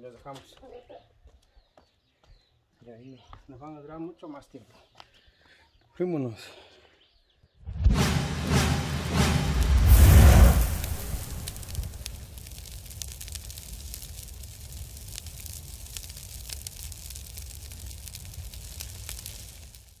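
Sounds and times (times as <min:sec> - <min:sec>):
low rumble of flames: 0:07.7 - 0:20.0
loud fire burst: 0:07.8 - 0:20.0
fire crackles: 0:08.0 - 0:20.0.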